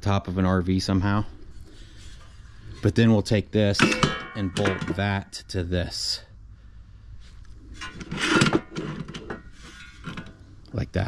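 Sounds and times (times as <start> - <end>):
sheet metal scraping clatter: 7.6 - 10.5.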